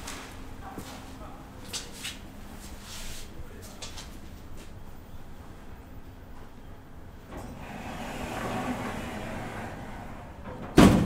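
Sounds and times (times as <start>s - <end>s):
elevator doors sliding: 7.2s - 11.0s
elevator doors banging shut: 7.3s - 11.0s.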